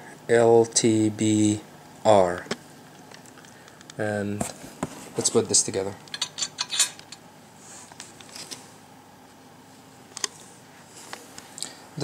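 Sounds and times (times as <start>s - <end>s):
metal parts clinking: 6.1s - 7.0s.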